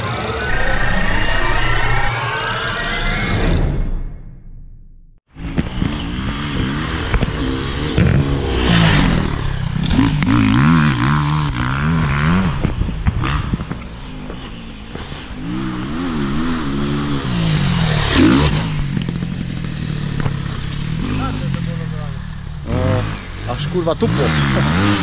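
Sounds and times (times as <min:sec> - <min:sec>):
dirt bike engines revving: 0:05.4 - 0:25.0.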